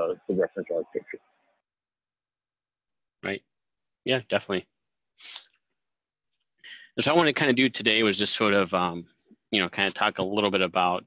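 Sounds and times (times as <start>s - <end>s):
person speaking: 0.0s - 1.2s.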